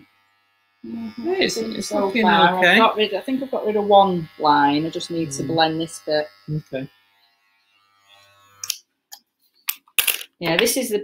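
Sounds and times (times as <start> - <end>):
electric hair clippers buzzing: 0.0 - 8.9.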